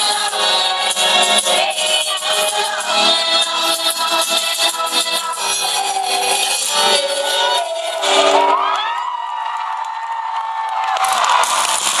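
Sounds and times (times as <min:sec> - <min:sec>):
live pop concert music: 0:00.0 - 0:12.0
crowd cheering: 0:07.8 - 0:12.0.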